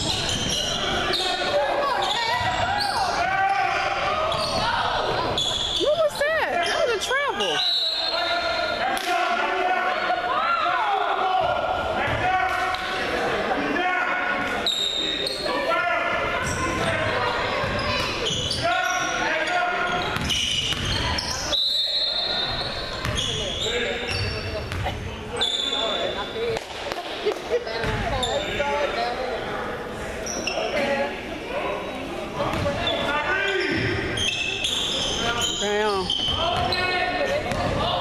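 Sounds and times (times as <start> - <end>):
voices talking and calling out: 0.0 - 38.0.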